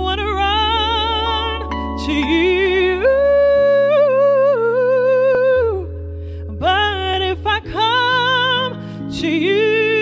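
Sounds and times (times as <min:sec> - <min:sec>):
bass: 0:00.0 - 0:10.0
electronic keyboard chords: 0:00.0 - 0:10.0
woman singing with vibrato: 0:00.0 - 0:10.0.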